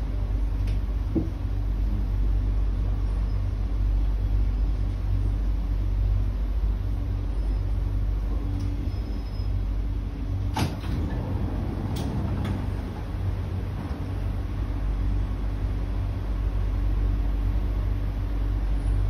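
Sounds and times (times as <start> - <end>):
train running rumble: 0.0 - 19.0
train doors clicking open: 10.4 - 14.2
train stopping knock: 10.5 - 14.4.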